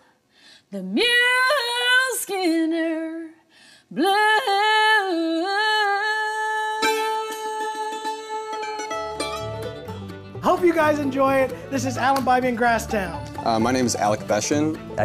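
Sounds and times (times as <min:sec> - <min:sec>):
woman singing unaccompanied: 0:00.7 - 0:08.9
mandolin picking: 0:06.8 - 0:15.0.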